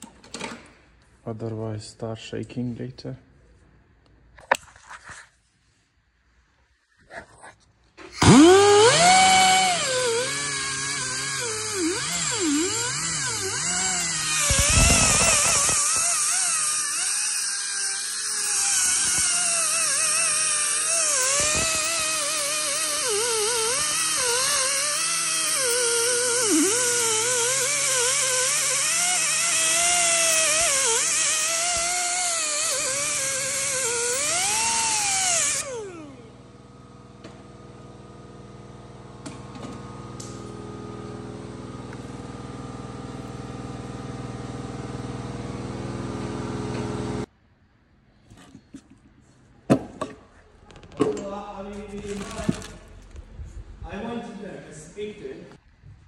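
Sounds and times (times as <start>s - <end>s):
power tool wire brush whine: 8.1s - 47.3s.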